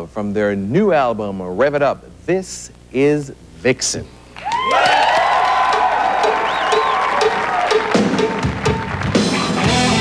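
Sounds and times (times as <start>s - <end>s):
audience cheering: 4.4s - 10.0s
live hard rock band: 7.7s - 10.0s.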